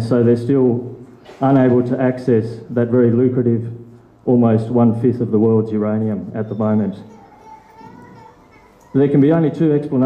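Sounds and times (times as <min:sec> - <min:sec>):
man talking into microphone: 0:00.0 - 0:07.1, 0:08.9 - 0:10.0
faint children's voices: 0:06.3 - 0:10.0.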